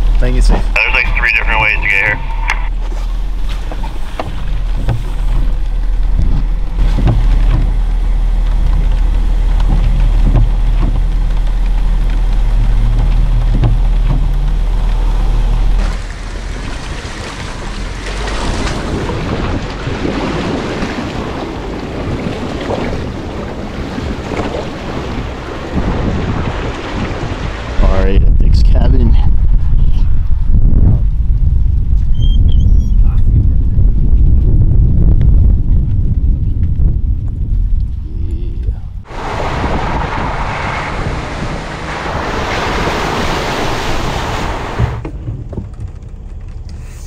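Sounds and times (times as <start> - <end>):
engine and wind drone: 0.0 - 47.0
tyre splashing through muddy water: 3.0 - 27.8, 39.1 - 45.2.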